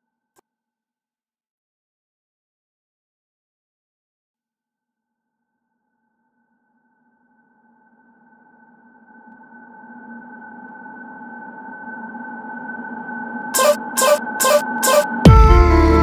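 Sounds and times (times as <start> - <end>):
sustained synthesizer chord: 13.6 - 16.0.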